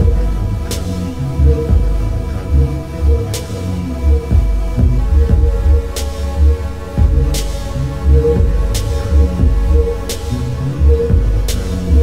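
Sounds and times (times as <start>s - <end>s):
deep throbbing bass pulses: 0.0s - 12.0s
droning electronic hum: 0.0s - 12.0s.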